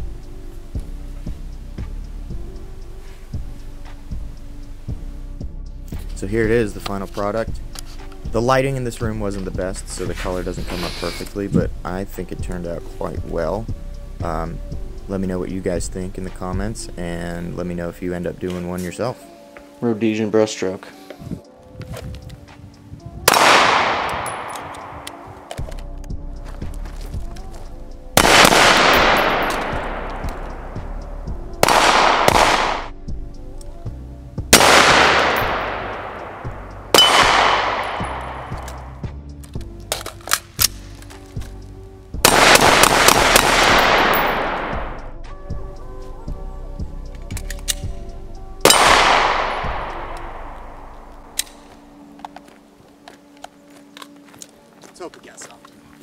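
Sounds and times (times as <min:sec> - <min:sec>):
handgun shots: 0:23.3 - 0:25.8, 0:28.2 - 0:30.6, 0:31.6 - 0:32.9, 0:34.6 - 0:38.9, 0:42.3 - 0:45.0, 0:48.7 - 0:51.8.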